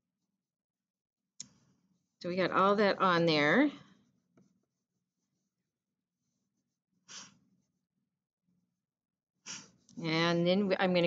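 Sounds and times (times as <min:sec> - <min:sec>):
crayon scratching on paper: 0:01.9 - 0:07.8.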